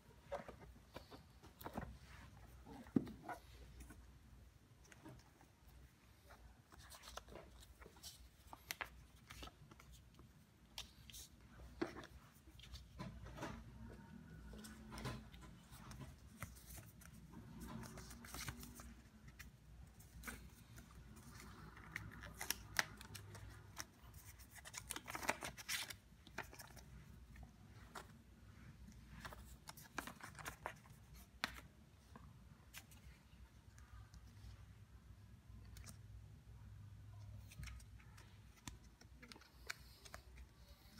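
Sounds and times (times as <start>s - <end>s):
paper rustling: 4.8s - 27.1s.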